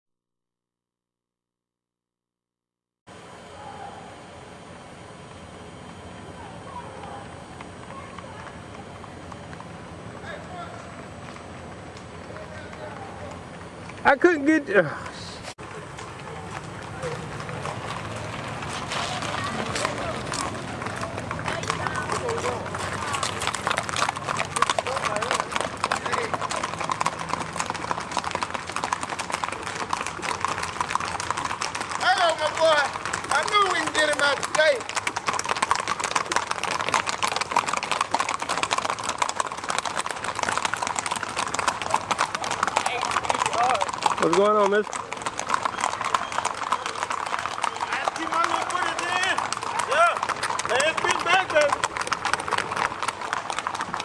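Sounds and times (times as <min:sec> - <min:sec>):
hooves clip-clopping on pavement: 0:05.4 - 0:54.0.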